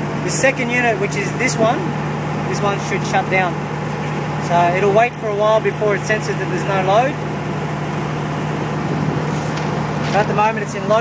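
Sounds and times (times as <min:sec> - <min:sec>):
diesel generators humming: 0:00.0 - 0:11.0.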